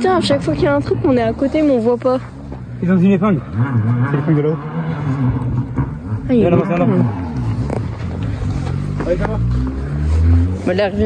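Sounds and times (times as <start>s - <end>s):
rally car engine: 0.0s - 11.0s.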